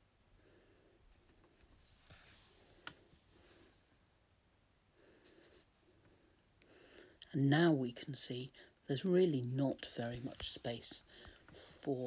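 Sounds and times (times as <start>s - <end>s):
soft rustles of crochet thread: 1.0s - 4.2s, 9.2s - 12.0s.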